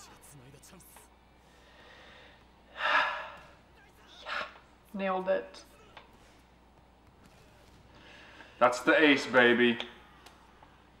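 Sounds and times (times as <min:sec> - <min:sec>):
person gasping: 0:01.6 - 0:03.6.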